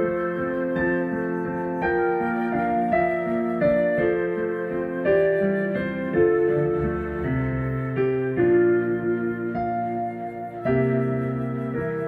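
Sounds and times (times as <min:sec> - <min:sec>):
digital piano chords: 0:00.0 - 0:12.0.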